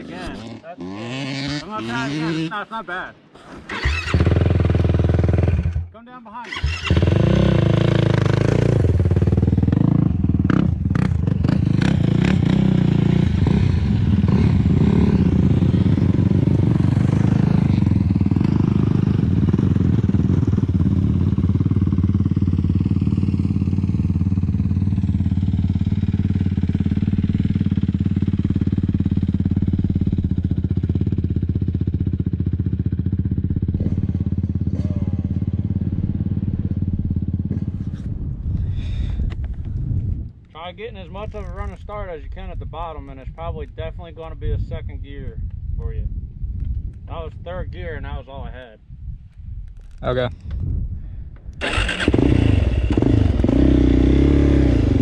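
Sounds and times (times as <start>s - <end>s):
quad engines running: 51.6s - 55.0s.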